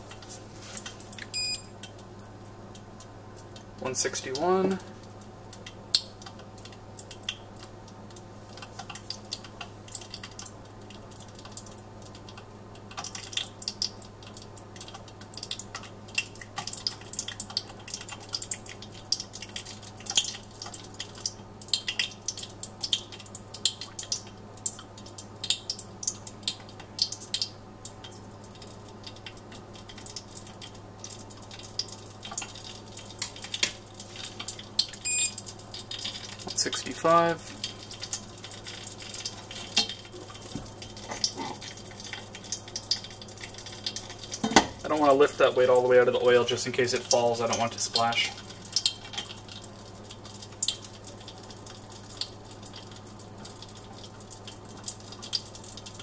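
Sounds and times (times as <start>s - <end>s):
hot oil crackling and popping: 0.0s - 56.0s.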